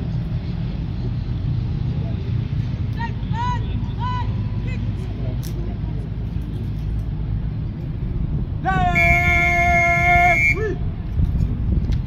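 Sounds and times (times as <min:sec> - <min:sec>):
wind rumble on microphone: 0:04.9 - 0:12.0
man shouting a command: 0:08.6 - 0:10.8.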